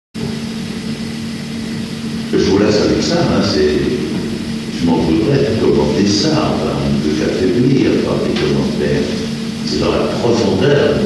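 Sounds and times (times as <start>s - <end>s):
tape hum and hiss: 0.2s - 11.0s.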